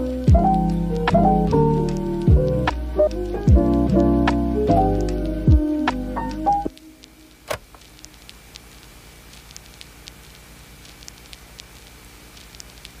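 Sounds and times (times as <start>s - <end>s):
vinyl record crackle: 0.0s - 13.0s.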